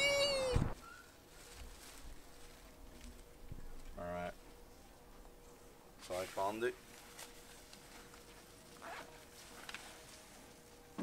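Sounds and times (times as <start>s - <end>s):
faint steady hum: 0.0s - 11.0s
puffer jacket rustling: 6.0s - 11.0s.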